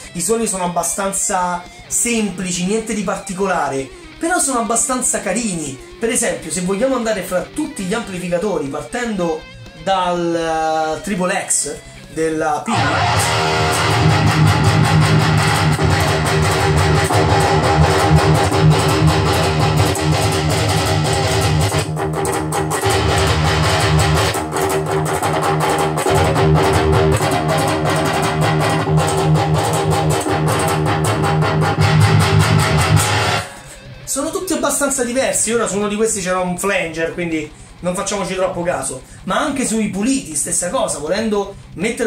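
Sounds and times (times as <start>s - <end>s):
high-gain electric guitar riffing: 0.0s - 42.0s.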